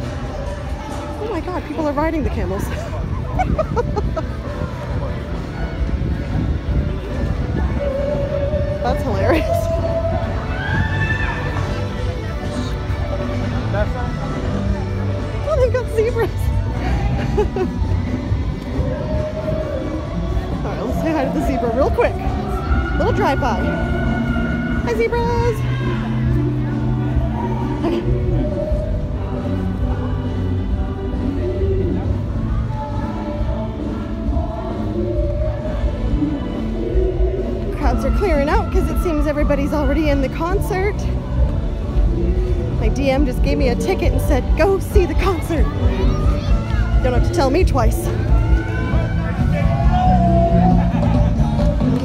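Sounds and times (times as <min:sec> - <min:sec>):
crowd noise: 0:00.0 - 0:52.0
amplified live concert music: 0:44.4 - 0:52.0.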